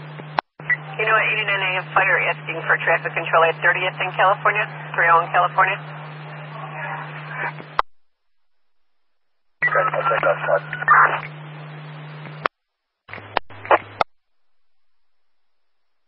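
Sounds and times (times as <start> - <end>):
steady low hum: 0.0 - 16.0
garbled two-way radio voice: 1.0 - 5.8, 9.6 - 11.3
radio squelch click: 9.7 - 11.4, 13.1 - 14.1.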